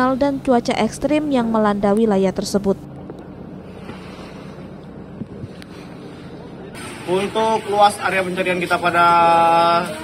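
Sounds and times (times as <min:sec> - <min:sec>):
low hum: 0:00.0 - 0:08.6
sea noise: 0:03.3 - 0:10.0
wind on microphone: 0:05.1 - 0:05.8.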